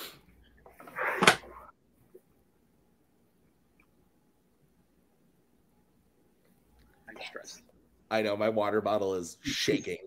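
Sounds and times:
soft whispered voice: 0:06.8 - 0:07.7.

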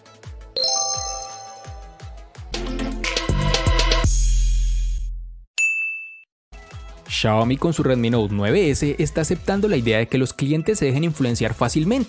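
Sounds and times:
background music: 0:00.5 - 0:03.3
bright ding: 0:00.6 - 0:02.2.

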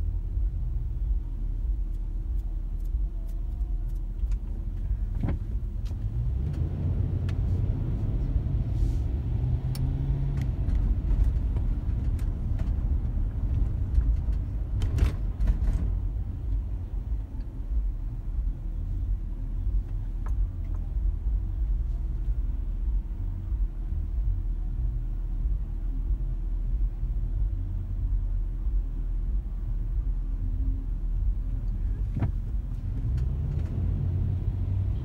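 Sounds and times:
car engine and road rumble: 0:00.0 - 0:35.0.

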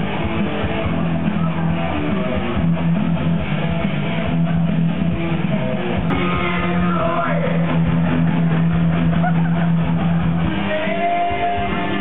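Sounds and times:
crowd voices: 0:00.0 - 0:12.0
heavy rock music: 0:00.0 - 0:12.0.

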